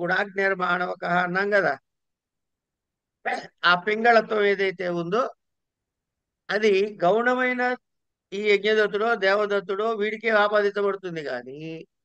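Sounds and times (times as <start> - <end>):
man speaking: 0.0 - 1.9, 3.2 - 5.4, 6.5 - 12.0.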